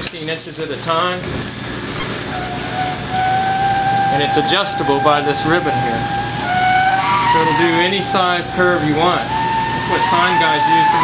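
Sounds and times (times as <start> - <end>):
gas burner flame hissing: 0.0 - 11.0
steady whistling tone: 2.0 - 11.0.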